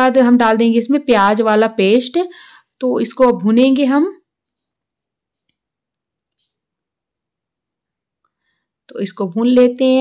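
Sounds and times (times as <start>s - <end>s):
woman speaking: 0.0s - 4.3s, 8.9s - 10.0s.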